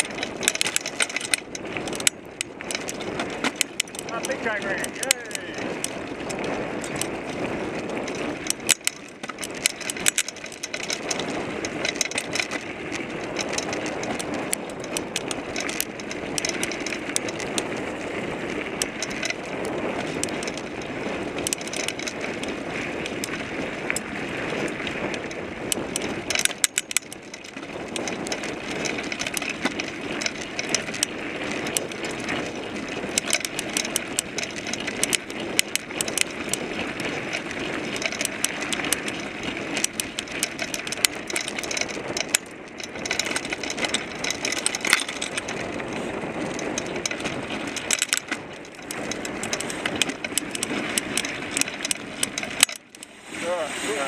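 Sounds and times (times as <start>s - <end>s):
bike rattles and clicks: 0.0s - 54.0s
bike tyre rolling over dirt: 0.0s - 54.0s.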